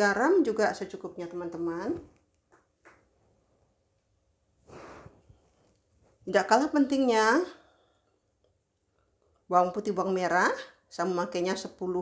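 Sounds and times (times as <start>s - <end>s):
short breath-like hiss: 4.6s - 5.4s.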